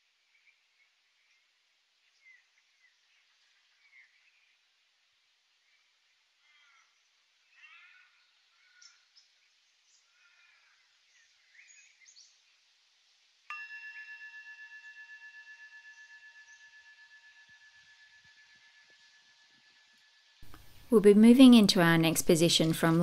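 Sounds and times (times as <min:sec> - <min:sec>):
faint bird chirps: 0:00.2 - 0:04.9, 0:05.6 - 0:12.7
bell ringing: 0:13.5 - 0:19.1.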